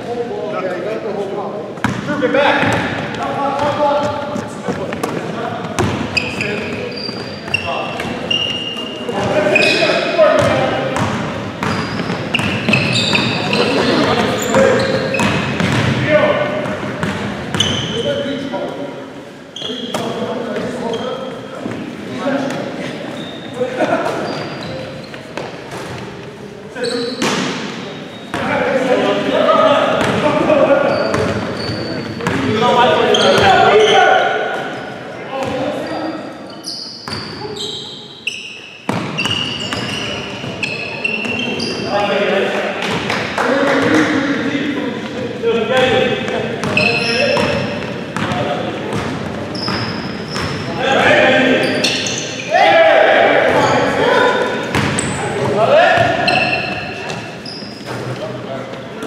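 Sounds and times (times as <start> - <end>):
sneaker squeaks: 1.7 - 29.3, 29.9 - 42.2, 45.8 - 52.6, 53.4 - 59.0
players shouting: 50.7 - 56.6.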